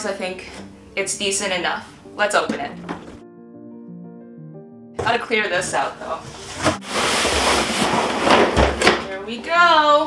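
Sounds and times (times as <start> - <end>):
cardboard and plastic rustling: 5.0 - 9.2.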